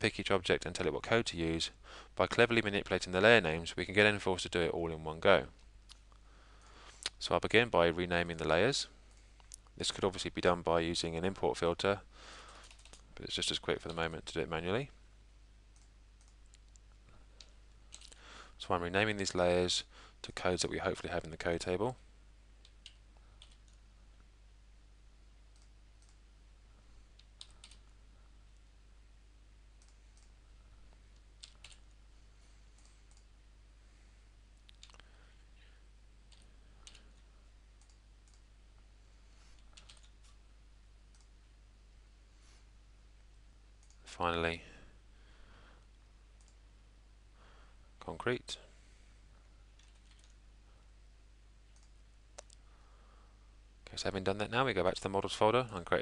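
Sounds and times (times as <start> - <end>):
low steady hum: 0.0 - 56.0
computer keystrokes: 12.5 - 13.0, 22.6 - 23.8, 27.2 - 27.9, 31.4 - 31.9, 36.3 - 37.0, 39.6 - 40.2, 49.8 - 50.4.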